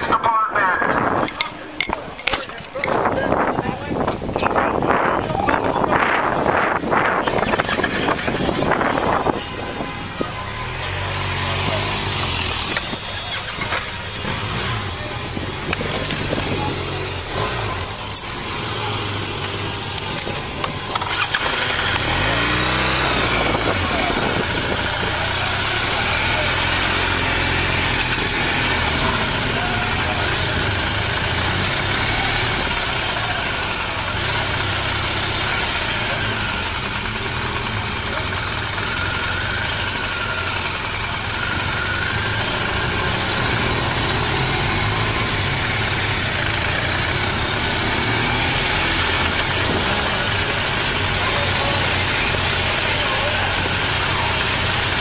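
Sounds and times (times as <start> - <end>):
wind and road noise: 0.0 - 55.0
motorcycle engine running: 2.8 - 55.0.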